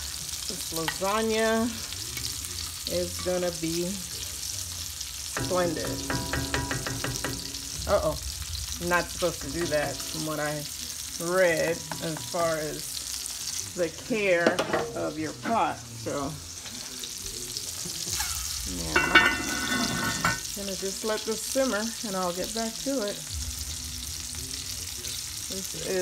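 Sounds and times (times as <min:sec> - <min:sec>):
steady sizzle: 0:00.0 - 0:26.0
pot lid clinking on rim: 0:05.4 - 0:07.7, 0:18.2 - 0:20.4
wooden spoon knocking pot: 0:05.4 - 0:08.0.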